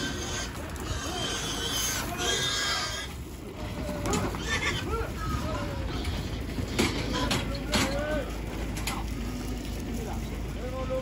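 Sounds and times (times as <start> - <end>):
pigs squealing: 0.0 - 8.0.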